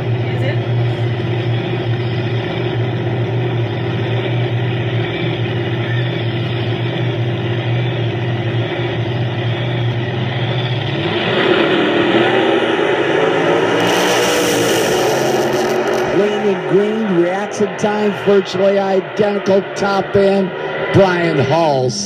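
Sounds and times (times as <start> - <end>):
drag racing engines revving: 0.0 - 22.0.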